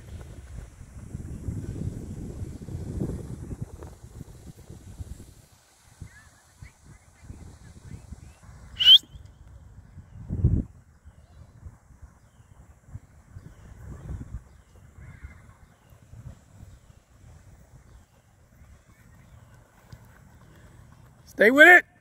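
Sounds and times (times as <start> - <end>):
wind rumble on microphone: 0.0 - 21.2
short high-pitched call: 8.8 - 9.2.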